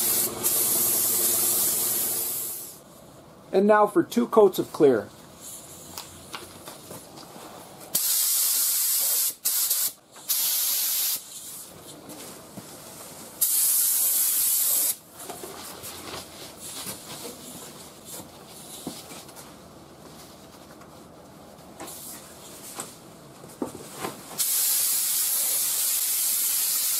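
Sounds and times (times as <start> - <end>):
spray gun hissing: 0.0 - 2.8, 8.0 - 11.2, 13.4 - 15.0, 24.4 - 26.9.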